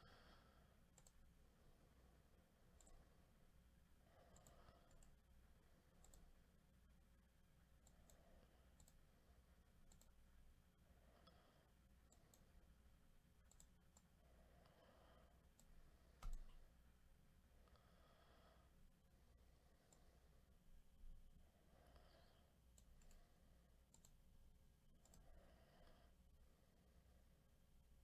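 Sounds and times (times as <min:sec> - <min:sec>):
computer mouse clicks: 0:00.9 - 0:01.3, 0:02.7 - 0:03.1, 0:04.3 - 0:05.2, 0:05.9 - 0:06.4, 0:07.8 - 0:09.2, 0:09.8 - 0:10.3, 0:12.0 - 0:12.6, 0:13.4 - 0:14.1, 0:15.5 - 0:16.6, 0:22.7 - 0:23.3, 0:23.9 - 0:24.2, 0:25.0 - 0:25.3.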